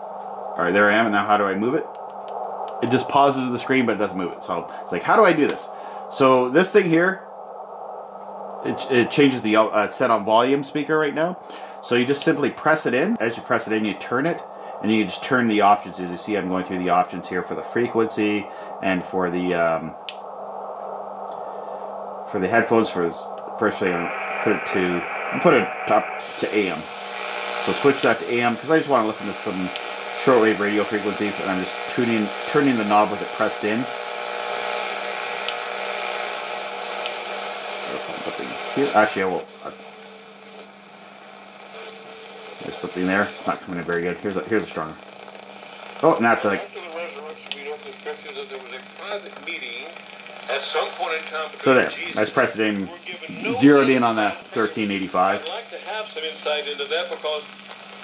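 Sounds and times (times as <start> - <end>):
low hum: 0.0 - 58.0
radio static hiss: 0.0 - 58.0.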